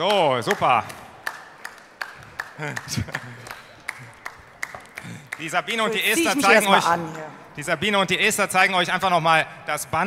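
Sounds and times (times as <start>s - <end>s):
hand claps: 0.0s - 5.6s.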